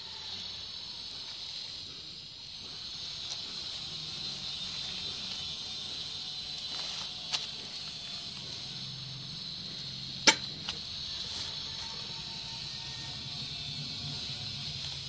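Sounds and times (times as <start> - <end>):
insects chirring: 0.0 - 15.0.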